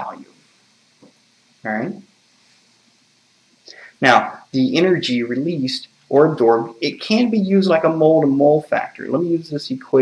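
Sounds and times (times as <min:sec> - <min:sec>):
room hiss: 0:00.0 - 0:10.0
soft breath: 0:03.6 - 0:04.0.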